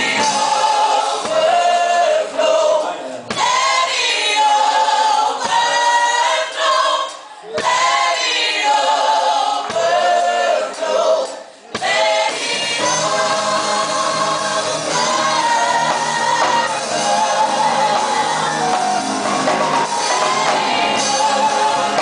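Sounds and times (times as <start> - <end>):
group singing gospel song: 0.0 - 22.0.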